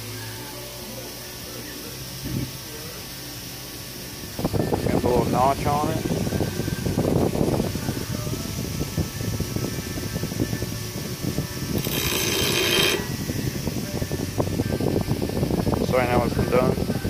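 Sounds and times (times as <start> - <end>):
bolt on spinning wire wheel: 11.8 - 13.2.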